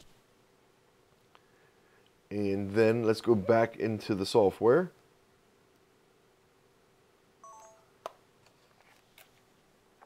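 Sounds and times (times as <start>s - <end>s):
faint steady hum: 0.0s - 10.0s
electronic beep: 7.4s - 7.9s.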